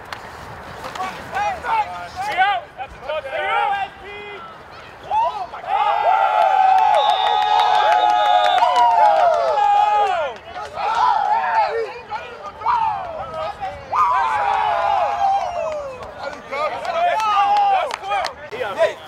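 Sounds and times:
men yelling and shouting: 1.0 - 7.2, 8.7 - 19.0.

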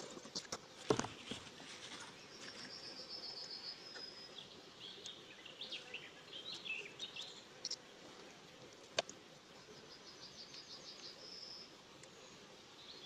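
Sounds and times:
faint background hiss: 0.0 - 13.0
small bird singing: 1.0 - 7.9, 9.7 - 13.0.

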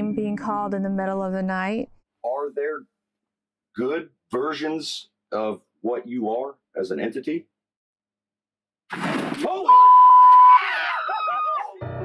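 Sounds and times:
high electronic beep: 9.7 - 10.5.

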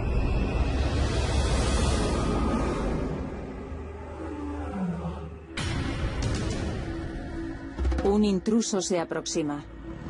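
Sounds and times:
sudden rush of noise: 0.0 - 3.6
lion roaring: 3.8 - 5.5.

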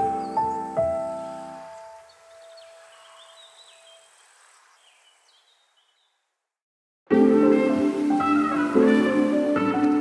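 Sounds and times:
faint bird chirps: 0.2 - 6.3
soft hiss: 0.6 - 6.3.

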